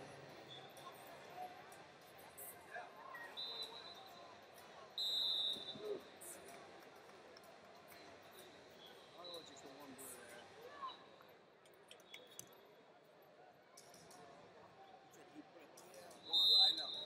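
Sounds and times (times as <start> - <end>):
arena crowd hubbub: 0.0 - 17.0
faint distant whistle: 3.3 - 4.2, 5.0 - 6.0, 16.2 - 17.0
referee whistle blast: 5.0 - 5.8, 16.3 - 17.0.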